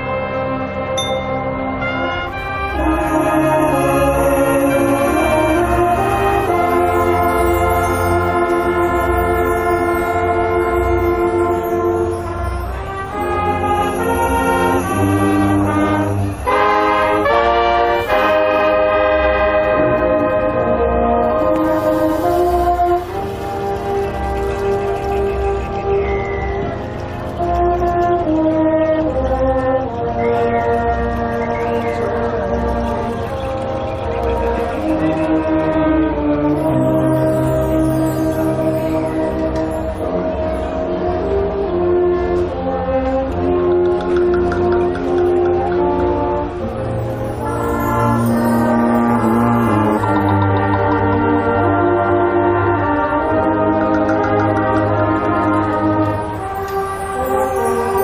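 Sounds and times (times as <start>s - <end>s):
brass section holding a chord: 0.0s - 33.3s, 34.0s - 58.0s.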